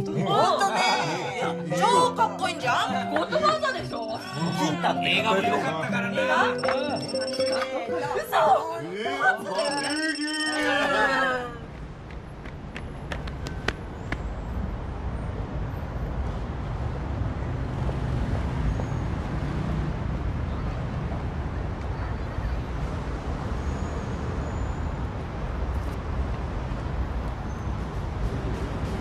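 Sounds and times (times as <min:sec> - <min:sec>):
road traffic rumble: 0:11.4 - 0:29.0.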